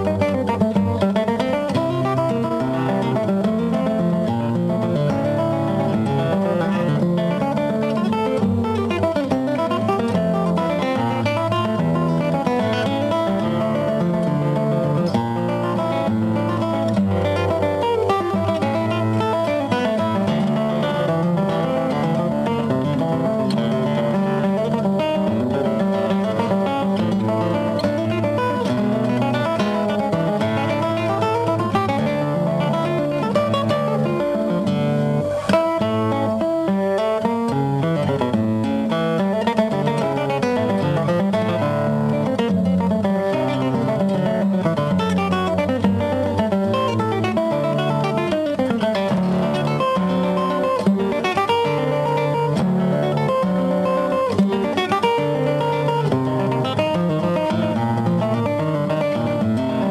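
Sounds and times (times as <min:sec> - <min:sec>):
fingerstyle classical guitar: 0:00.0 - 0:59.9.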